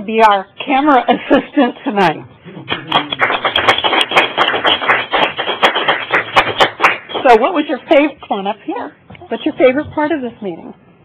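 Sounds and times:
audience applauding: 0:02.6 - 0:07.4.

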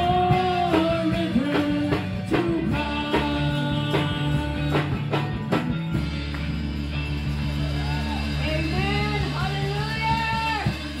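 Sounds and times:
woman singing: 0:00.0 - 0:05.0
electric keyboard chord: 0:00.0 - 0:11.0.

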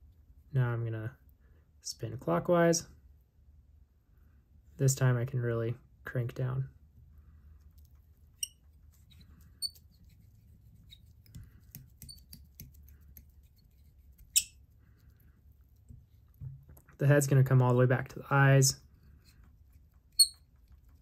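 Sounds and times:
low steady hum: 0:00.0 - 0:21.0
thread clicks and squeaks: 0:08.4 - 0:10.0, 0:12.0 - 0:12.7, 0:14.2 - 0:14.6, 0:20.0 - 0:21.0.

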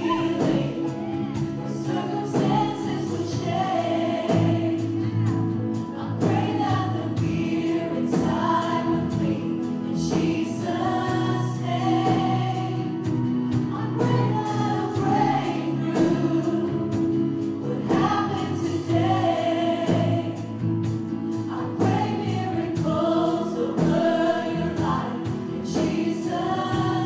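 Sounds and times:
acoustic guitar: 0:00.0 - 0:27.0
group of singers singing: 0:00.0 - 0:27.0
keyboard: 0:00.0 - 0:27.0.

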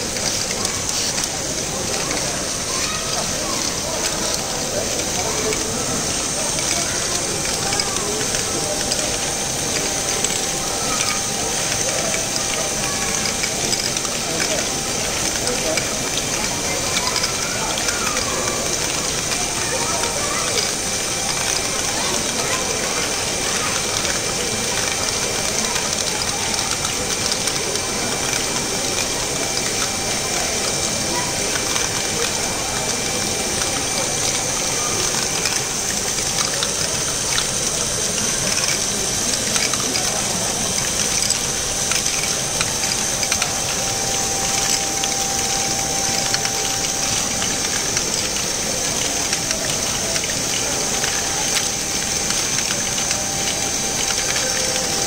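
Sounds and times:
clatter of plastic gears: 0:00.0 - 0:55.0.

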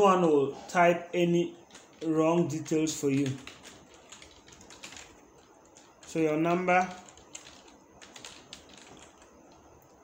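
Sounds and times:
keystrokes on computer keyboard: 0:01.6 - 0:10.0.

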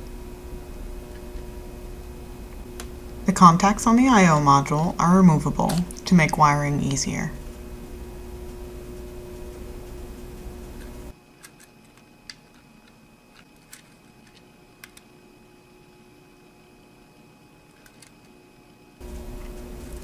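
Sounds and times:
steady low hum: 0:00.0 - 0:20.0
small plastic clicks: 0:11.4 - 0:15.1, 0:17.7 - 0:18.4.

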